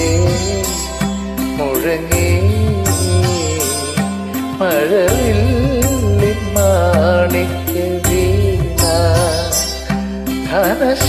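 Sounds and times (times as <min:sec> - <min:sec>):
light beat: 0:00.0 - 0:11.0
sustained bass: 0:00.0 - 0:11.0.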